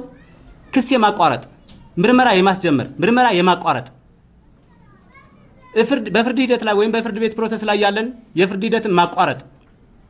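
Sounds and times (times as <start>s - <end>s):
man speaking: 0.7s - 4.0s, 5.8s - 9.5s.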